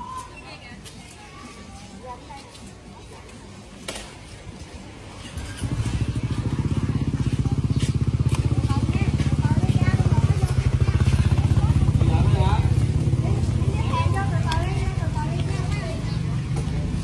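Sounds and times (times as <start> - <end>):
people talking: 0.0 - 4.6, 5.4 - 17.0
motorbike engine running: 5.3 - 17.0.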